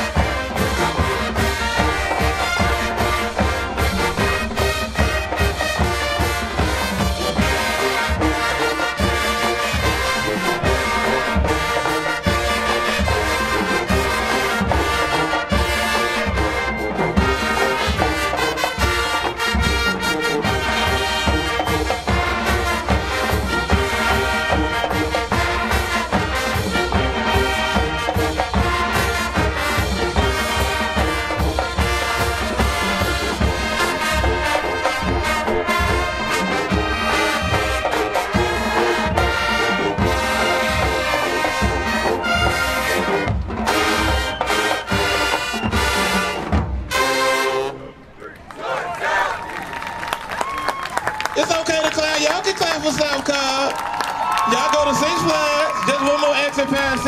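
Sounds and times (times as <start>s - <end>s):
drumline beat: 0.0s - 47.7s, 49.7s - 57.0s
brass section playing: 0.0s - 49.5s.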